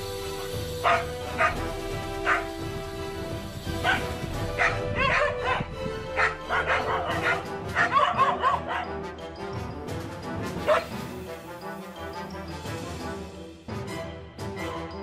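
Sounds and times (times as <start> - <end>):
background music: 0.0 - 15.0
dogs barking: 0.8 - 2.5, 3.7 - 9.0, 10.6 - 11.0
dog yips: 3.8 - 8.9, 10.6 - 10.9.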